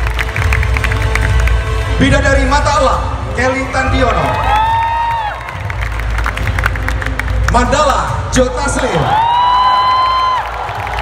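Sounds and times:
crowd cheering: 3.8 - 7.2, 8.7 - 11.0.

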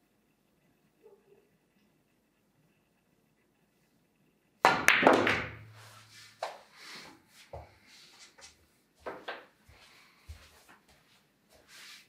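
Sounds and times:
pool balls clicking: 4.6 - 5.8
cue tip striking ball: 4.7 - 5.7.

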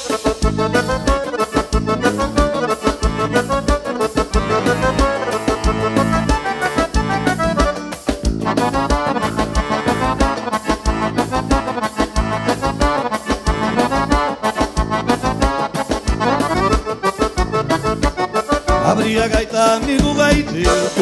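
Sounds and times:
accordion: 0.0 - 21.0
electric bass: 0.0 - 21.0
steady drum beat: 0.0 - 21.0.

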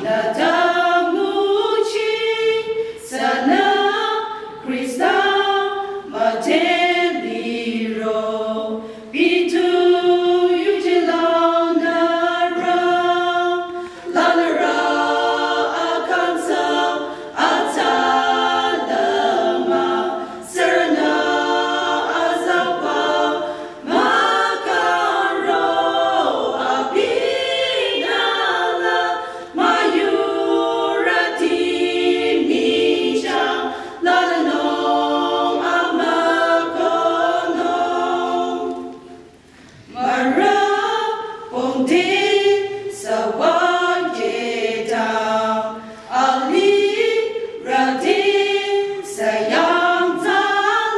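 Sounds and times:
women singing a cappella: 0.0 - 50.9.

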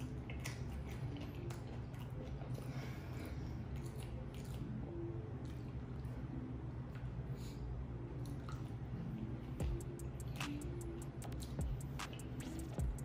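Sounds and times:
person chewing: 0.0 - 13.0
steady low hum: 0.0 - 13.0.

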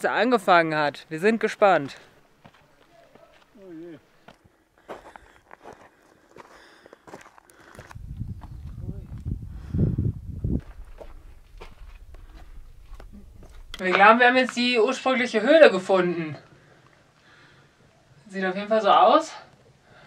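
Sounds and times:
footsteps on stone steps: 1.5 - 9.2, 10.5 - 14.7
uneven low rumble: 7.9 - 14.6.

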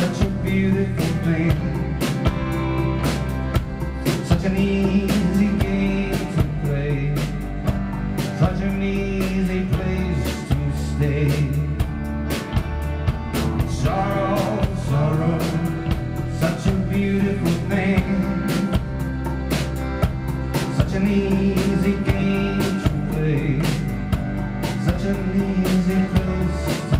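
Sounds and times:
accordion: 0.0 - 26.9
drum kit beat: 0.0 - 26.9
guitar: 0.0 - 26.9.

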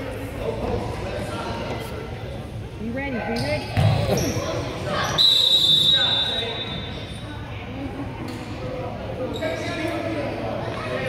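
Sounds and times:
basketball bouncing on gym floor: 3.4 - 4.3
referee whistle blast: 5.0 - 6.9.

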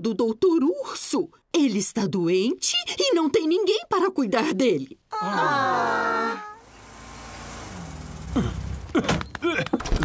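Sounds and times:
cartoon car engine humming: 5.2 - 9.4.

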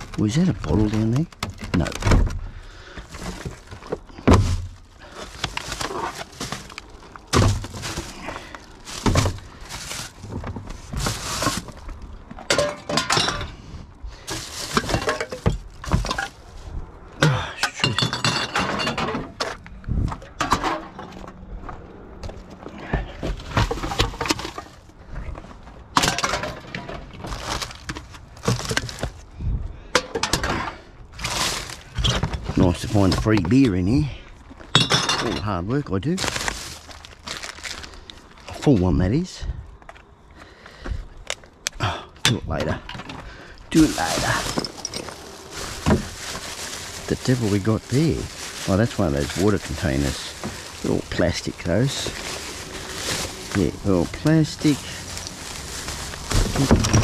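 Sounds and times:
plastic bags rustling: 0.0 - 17.2, 22.2 - 29.3, 30.1 - 39.2, 42.6 - 57.0
cans and bottles clinking: 12.4 - 13.6, 14.2 - 16.4, 17.3 - 19.6, 26.0 - 29.0, 34.6 - 35.6, 42.2 - 57.0.

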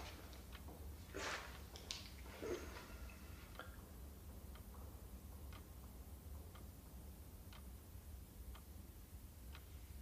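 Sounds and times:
faint clock ticking: 0.0 - 1.8, 2.6 - 10.0.

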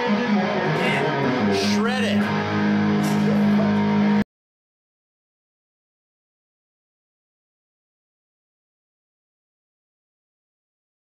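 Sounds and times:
electric guitar sustained notes: 0.0 - 4.2.

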